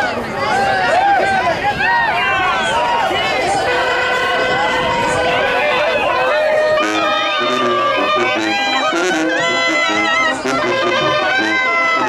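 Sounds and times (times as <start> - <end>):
crowd shouting and whooping: 0.0 - 12.0
brass band playing: 2.3 - 12.0.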